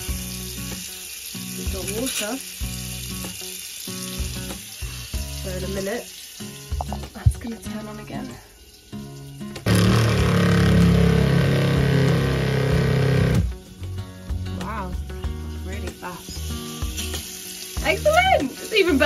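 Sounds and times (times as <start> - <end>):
background music: 0.0 - 19.0
water pump running: 9.6 - 13.6.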